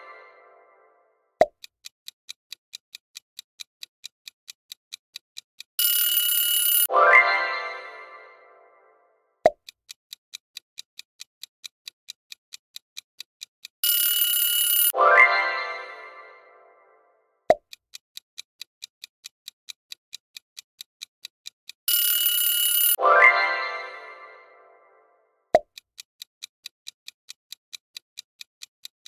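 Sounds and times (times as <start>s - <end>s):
ticking countdown clock: 0.0s - 25.0s, 25.6s - 29.0s
ringing alarm buzzer: 5.8s - 6.9s, 13.8s - 14.9s, 21.9s - 23.0s
bright chime: 6.8s - 8.9s, 22.7s - 25.0s.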